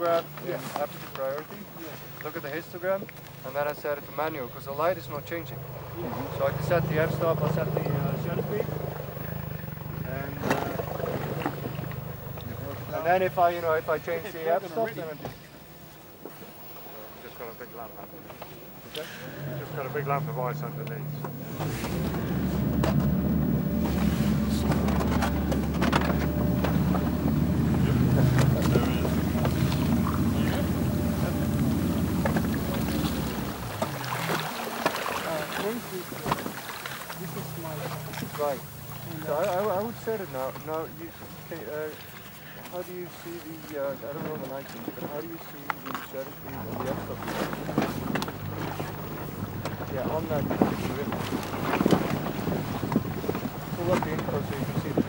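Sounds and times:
outboard motor running: 0:00.0 - 0:55.0
wind buffeting microphone: 0:48.3 - 0:55.0.

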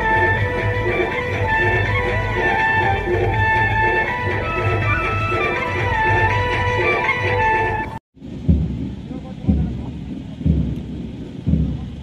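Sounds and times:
bass drum beating march time: 0:00.0 - 0:12.0.

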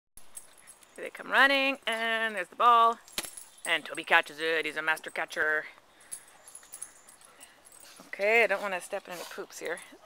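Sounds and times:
dogs moving among plants: 0:06.4 - 0:10.0.

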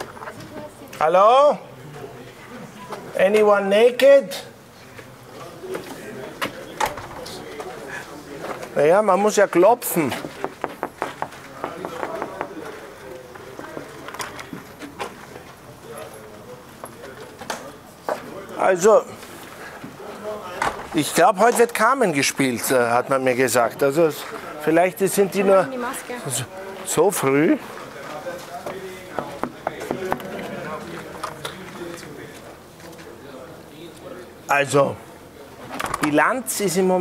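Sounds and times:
faint background voices: 0:00.0 - 0:03.4, 0:04.1 - 0:36.5
knuckles knocking on glass door: 0:10.4 - 0:12.6.

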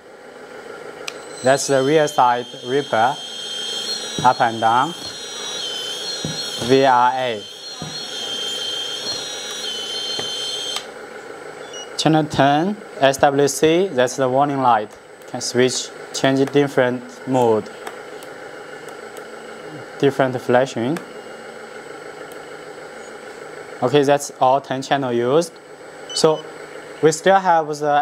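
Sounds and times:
pump motor whining: 0:00.0 - 0:23.8
motor stopping click: 0:01.0 - 0:11.8.

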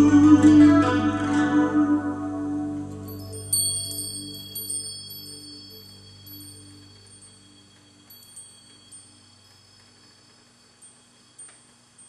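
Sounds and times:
low sustained tone: 0:00.0 - 0:12.0
high-pitched metal chimes: 0:02.9 - 0:12.0.

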